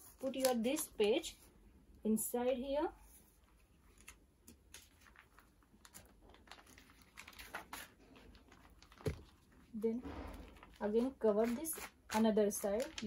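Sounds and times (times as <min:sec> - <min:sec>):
plastic cover and paper rustling: 0:03.2 - 0:13.0.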